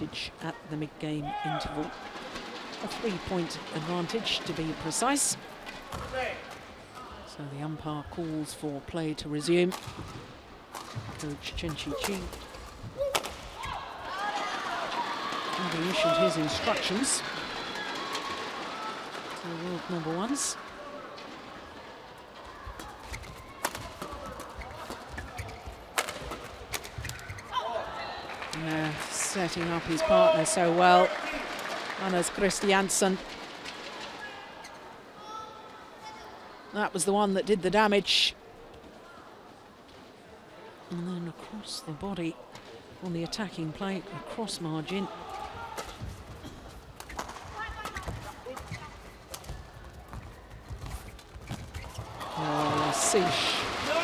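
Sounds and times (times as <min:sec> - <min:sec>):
low arena background: 0:00.0 - 0:54.0
players' footwork on court: 0:45.1 - 0:54.0.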